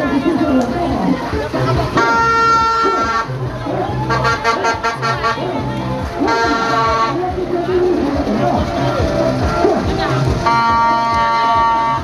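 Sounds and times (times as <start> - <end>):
party music with thumping bass: 0.0 - 12.0
voices: 0.0 - 12.0
horn-like blast: 1.9 - 3.4, 6.2 - 7.2, 10.4 - 12.0.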